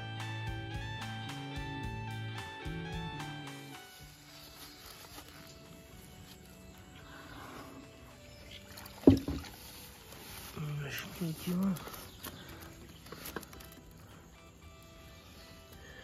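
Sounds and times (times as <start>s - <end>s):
guitar music: 0.0s - 8.8s, 12.4s - 16.0s
faint water movement: 6.8s - 13.8s
man speaking: 10.6s - 11.9s.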